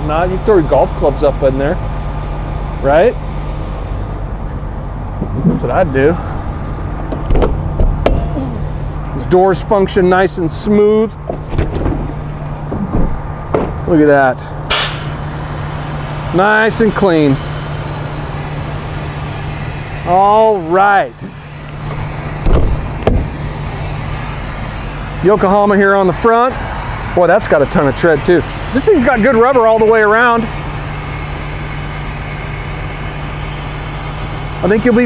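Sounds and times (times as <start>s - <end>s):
steady low rumble: 0.0s - 29.2s
steady low hum: 0.0s - 35.0s
luggage door shutting and latching: 7.1s - 8.3s, 11.2s - 13.8s, 22.4s - 23.3s.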